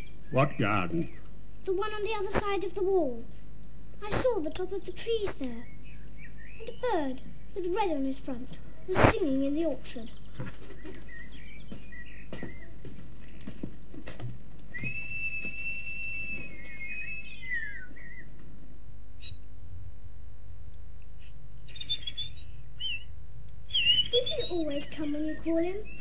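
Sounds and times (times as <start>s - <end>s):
high bird chirps: 0.0s - 1.4s, 5.3s - 12.8s, 14.7s - 18.4s, 19.2s - 19.5s, 21.2s - 26.0s
man whistling a long high note: 14.7s - 18.1s.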